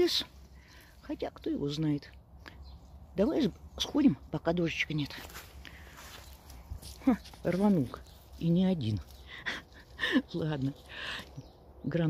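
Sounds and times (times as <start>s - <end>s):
faint footsteps on wet leaves: 4.8s - 11.2s.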